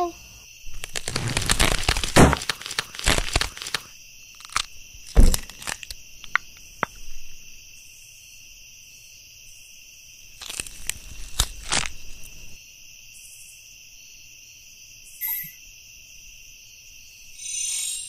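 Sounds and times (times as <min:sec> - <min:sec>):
crickets chirring: 0:00.0 - 0:18.0
loud thumps and crunches: 0:00.7 - 0:07.1, 0:10.4 - 0:12.6.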